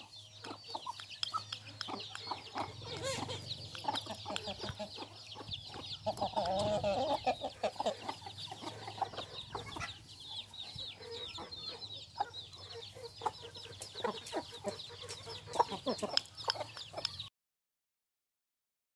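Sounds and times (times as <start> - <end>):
chicks peeping: 0.0 - 17.3
hens clucking: 0.0 - 17.3.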